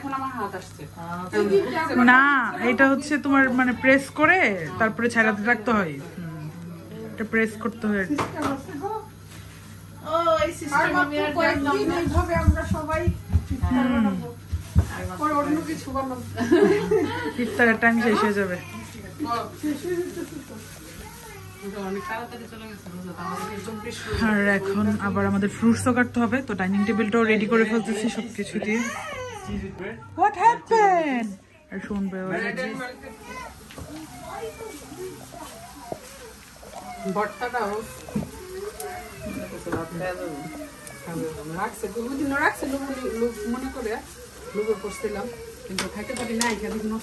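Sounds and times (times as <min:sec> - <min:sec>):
hot oil sizzling: 0:00.0 - 0:06.0, 0:14.2 - 0:28.2, 0:32.4 - 0:47.0
people talking: 0:10.0 - 0:47.0.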